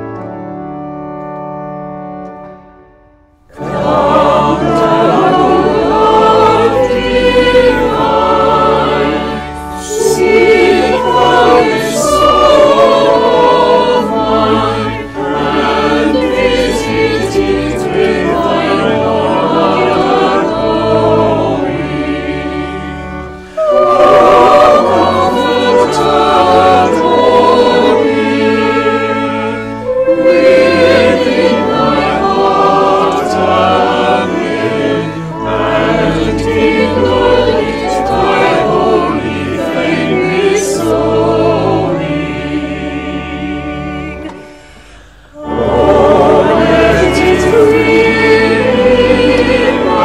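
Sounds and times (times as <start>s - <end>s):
church choir singing: 0.0s - 50.0s
organ bass notes: 0.0s - 50.0s.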